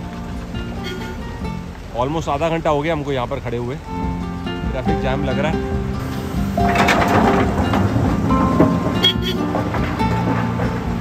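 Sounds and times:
background music: 0.0s - 11.0s
vehicle horns: 0.8s - 1.3s, 6.6s - 9.8s.

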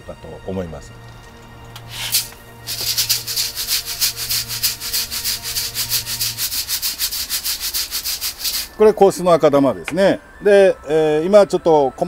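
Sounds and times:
soil granules poured into a sieve: 1.8s - 8.8s
gritty rattle of shaken sieve: 1.9s - 8.8s.

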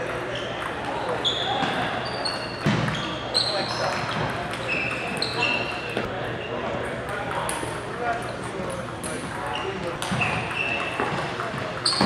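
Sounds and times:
sneakers squeaking on floor: 0.0s - 6.5s, 9.2s - 12.0s
table tennis balls clicking: 10.0s - 12.0s.

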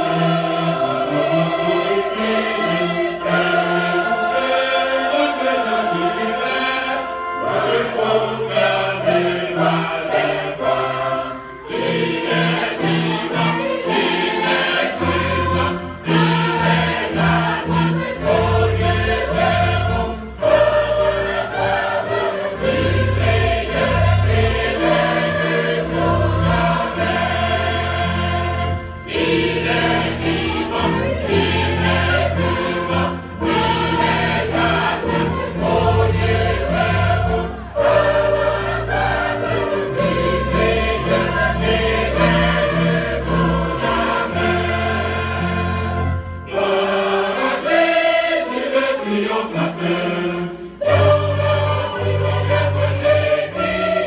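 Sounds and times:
choir singing a hymn: 0.0s - 54.0s
string ensemble playing: 0.0s - 54.0s.

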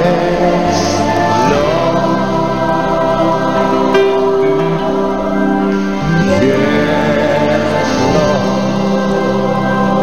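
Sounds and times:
gospel choir singing: 0.0s - 10.0s.

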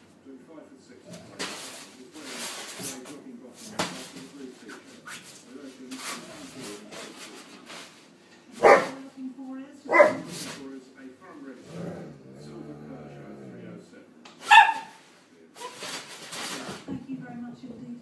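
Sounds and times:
quiet dog noises: 0.9s - 9.1s
dog barking: 8.6s - 9.0s, 9.9s - 10.3s, 14.4s - 15.0s.

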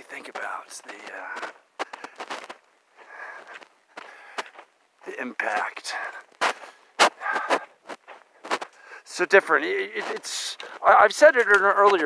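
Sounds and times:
footsteps on sandy dirt trail: 0.0s - 12.0s.

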